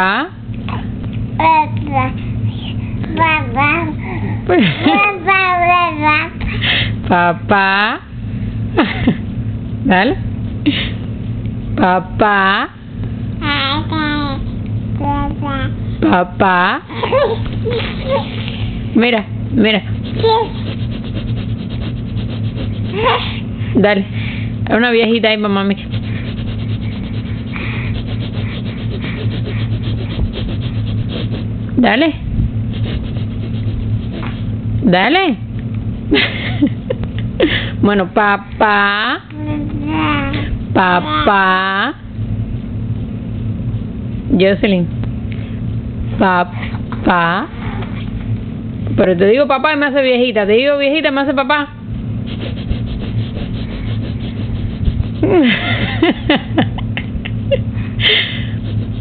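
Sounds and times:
low hum: 0.0 - 59.0
person laughing: 4.5 - 5.0, 8.8 - 9.3, 16.9 - 18.3, 36.1 - 37.8, 55.2 - 58.6
fast rubbing or ticking: 19.8 - 23.2, 25.4 - 31.6, 32.7 - 34.5, 52.2 - 55.5.

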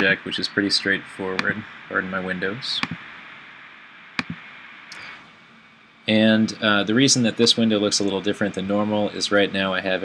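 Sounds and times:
steady low hiss: 0.0 - 10.0
sharp mouse clicks: 1.4 - 1.6, 2.8 - 3.0, 4.2 - 5.0.

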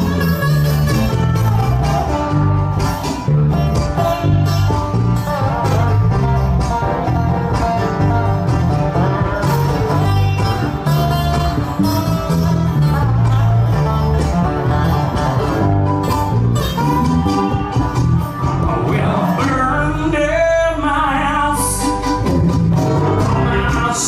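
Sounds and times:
acoustic guitar strumming: 0.0 - 24.0
plucked-string lead: 0.0 - 24.0
steady bass line: 0.0 - 24.0.

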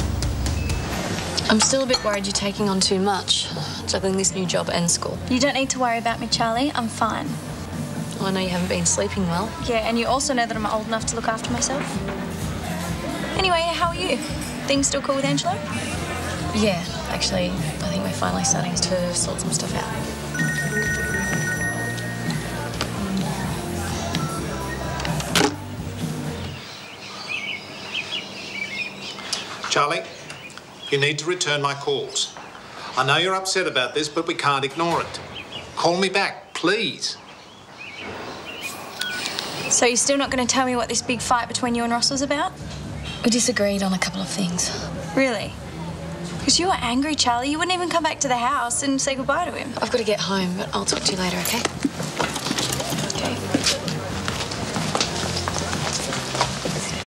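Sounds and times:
murmur of voices: 8.3 - 26.6, 43.2 - 57.0
music cue: 20.2 - 25.5
bird chirps: 26.6 - 31.2, 37.2 - 39.9.

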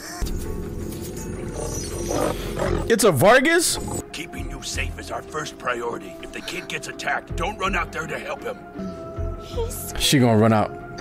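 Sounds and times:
tense background music: 0.0 - 11.0
large monster growling: 1.1 - 4.0.

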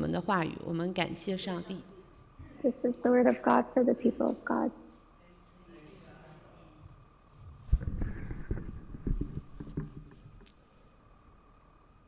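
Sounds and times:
muffled low rumbling and knocks: 6.8 - 10.4.

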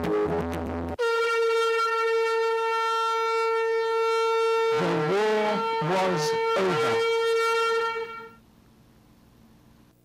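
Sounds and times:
conch shell blown: 0.0 - 8.4.

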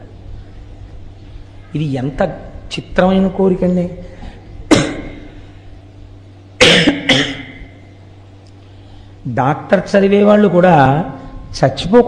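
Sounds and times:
steady low hum: 0.0 - 12.0
loud close cough: 4.7 - 5.3, 6.6 - 7.7.

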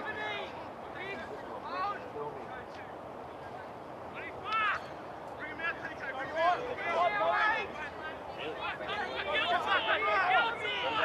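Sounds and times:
outdoor background noise: 0.0 - 11.0
players shouting: 4.2 - 11.0.

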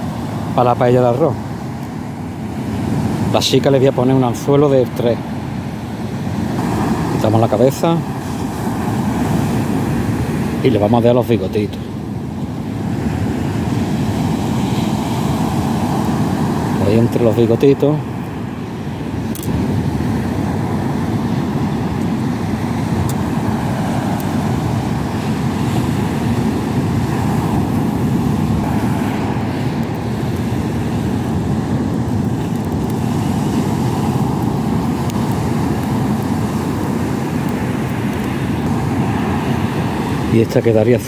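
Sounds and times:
rough sea surf breaking: 0.0 - 41.0.

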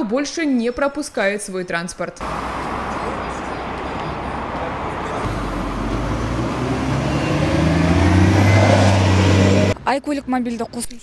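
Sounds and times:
street noise: 0.0 - 11.0
bus engine pulling away: 2.2 - 9.8.

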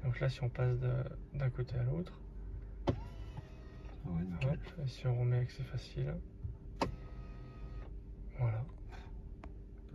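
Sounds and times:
electric seat motors whining: 2.8 - 4.6, 6.8 - 8.0.

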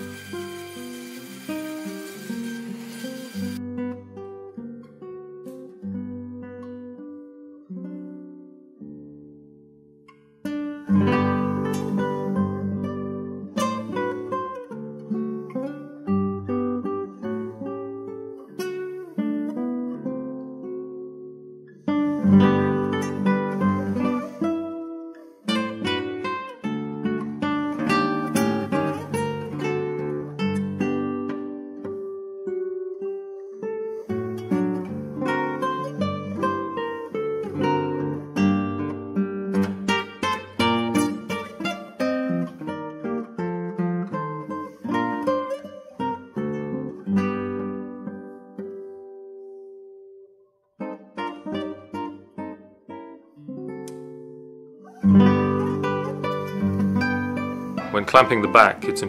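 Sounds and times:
solo classical guitar: 0.0 - 59.0.

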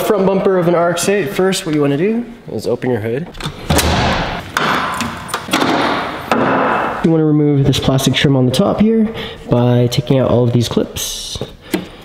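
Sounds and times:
sharp knocks and clunks: 3.4 - 7.0.

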